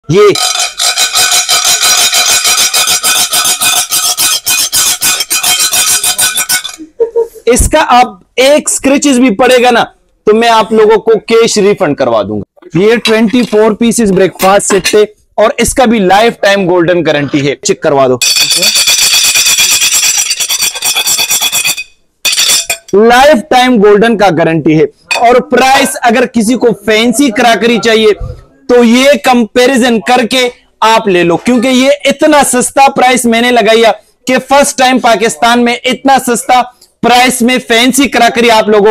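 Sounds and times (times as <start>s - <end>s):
metal spoon scraping ceramic plate: 0.4s - 6.8s, 18.2s - 22.9s.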